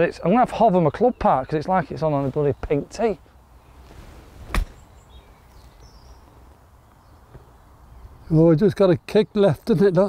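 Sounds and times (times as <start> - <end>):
quiet open-air background: 0.0 - 10.0
golf club striking ball: 4.5 - 4.8.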